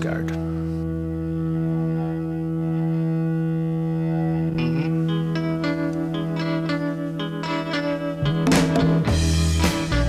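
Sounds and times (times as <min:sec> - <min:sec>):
distorted electric guitar chord: 0:00.0 - 0:10.0.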